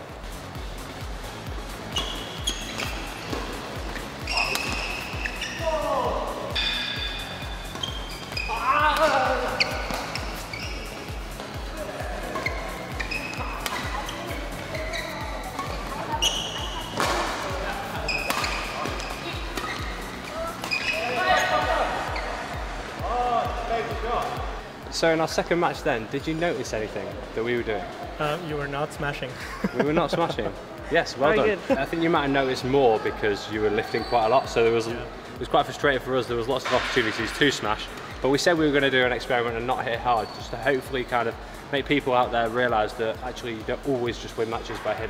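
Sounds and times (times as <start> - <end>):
background music with steady beat: 0.0 - 45.0
shoes squeaking on court: 0.5 - 23.0, 32.9 - 35.0, 39.8 - 41.0
rackets striking shuttlecock: 2.0 - 5.6, 6.6 - 10.7, 12.3 - 14.0, 15.5 - 21.0.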